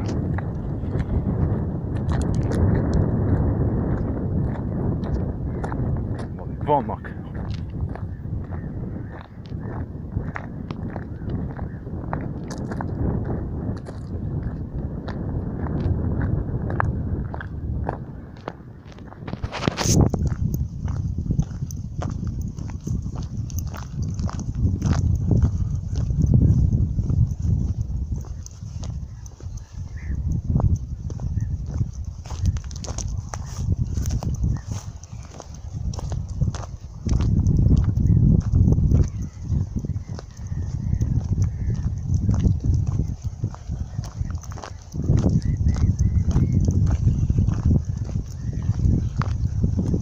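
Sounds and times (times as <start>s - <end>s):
wind buffeting microphone: 0.0s - 50.0s
footsteps and handling clicks: 1.9s - 6.4s, 7.4s - 8.6s, 10.2s - 13.0s, 13.8s - 15.9s, 16.7s - 50.0s.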